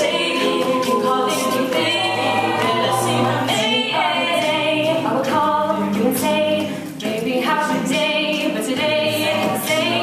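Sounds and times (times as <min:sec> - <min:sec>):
female lead singing: 0:00.0 - 0:10.0
vocal backing harmonies: 0:00.0 - 0:10.0.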